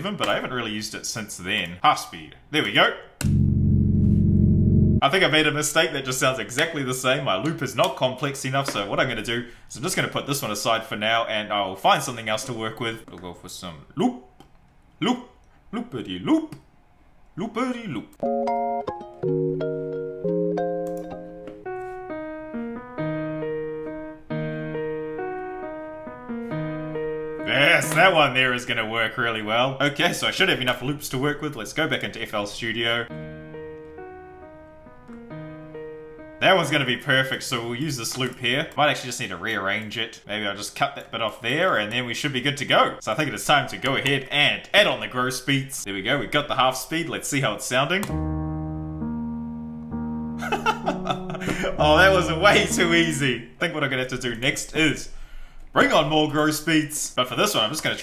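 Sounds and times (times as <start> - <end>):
piano chords ringing: 3.2 - 5.0, 18.2 - 28.6, 33.1 - 37.0, 48.1 - 53.5.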